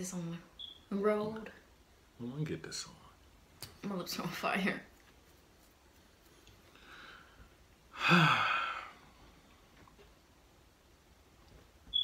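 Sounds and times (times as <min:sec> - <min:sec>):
faint breath: 0:06.7 - 0:09.4
man sighing: 0:07.9 - 0:09.1.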